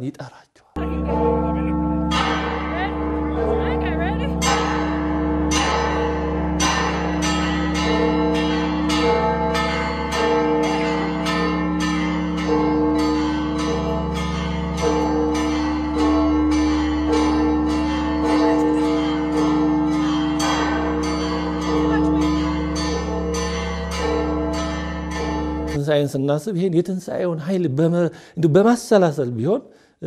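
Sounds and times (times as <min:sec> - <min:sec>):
church bells pealing: 0:00.8 - 0:27.9.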